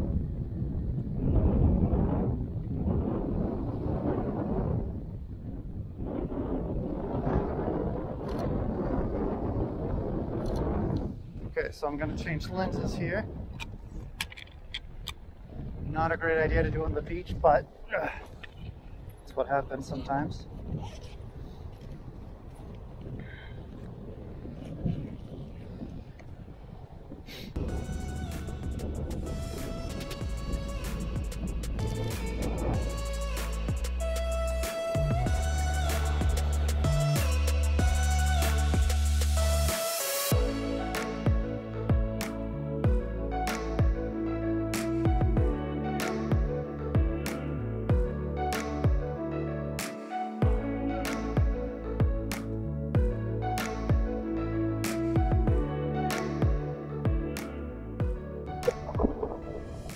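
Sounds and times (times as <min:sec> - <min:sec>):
wind buffeting microphone: 0:00.0 - 0:39.6, 0:58.0 - 0:59.9
background music: 0:27.6 - 0:59.9.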